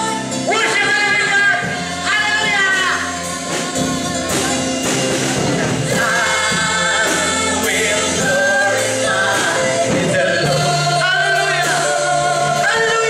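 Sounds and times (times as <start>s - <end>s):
instrumental backing with bass: 0.0s - 13.0s
voices singing gospel: 0.0s - 13.0s.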